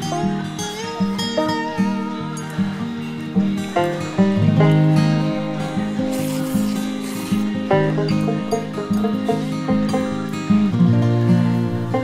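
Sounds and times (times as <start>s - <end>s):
plucked acoustic string music: 0.0s - 12.0s.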